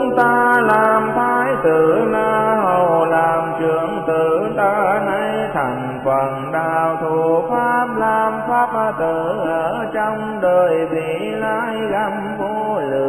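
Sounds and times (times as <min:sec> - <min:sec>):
person chanting melodically: 0:00.0 - 0:13.0.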